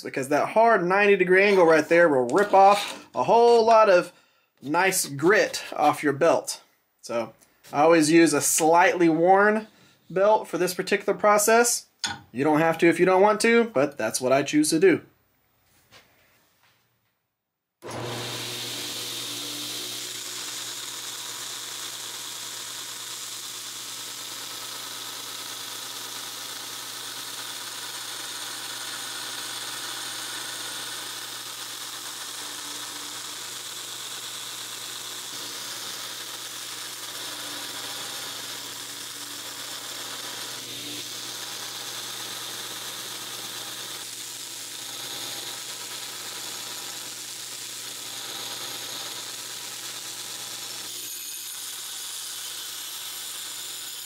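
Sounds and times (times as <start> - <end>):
steel grinding against abrasive belt: 1.4 - 3.7, 17.8 - 54.0
belt grinder motor hum: 2.3 - 3.6, 17.8 - 54.0.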